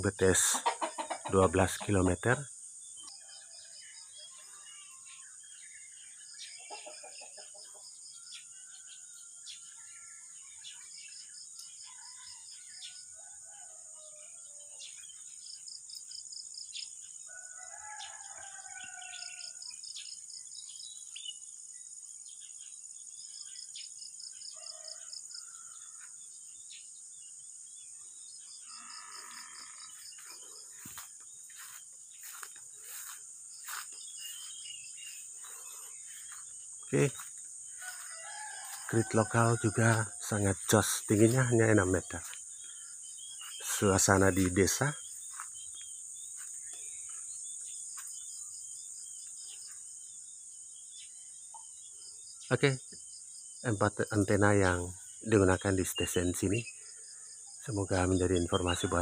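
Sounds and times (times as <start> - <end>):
bird calls: 2.9 - 15.7, 27.9 - 50.1
distant rooster crowing: 17.3 - 19.6, 24.5 - 26.1, 31.6 - 42.7
rapid pulsed insect chirp: 19.6 - 58.4
high insect drone: 24.6 - 56.9.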